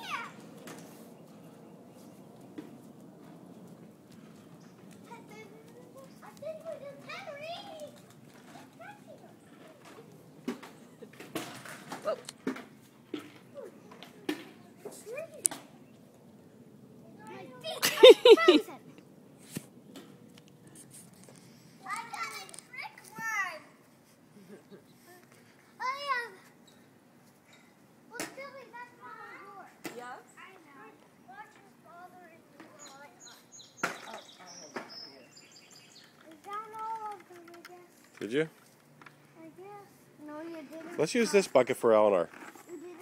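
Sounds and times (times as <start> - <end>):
children's voices at play: 0.0 - 2.2, 4.1 - 19.1, 21.6 - 38.2, 39.2 - 41.6, 42.5 - 43.0.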